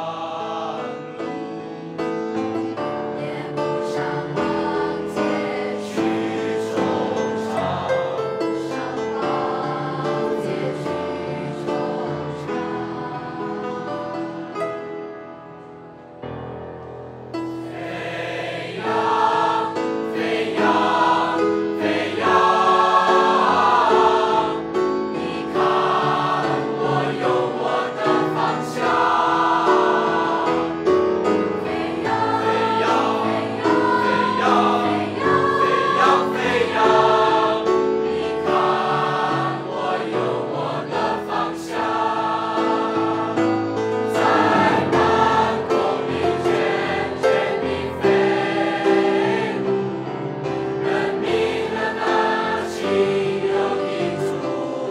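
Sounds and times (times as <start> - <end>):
mixed choir singing: 0.0 - 15.0, 17.5 - 54.9.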